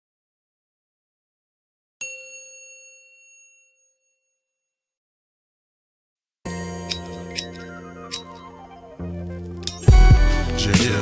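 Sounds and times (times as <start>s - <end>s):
bright metallic ding: 6.5s - 8.6s.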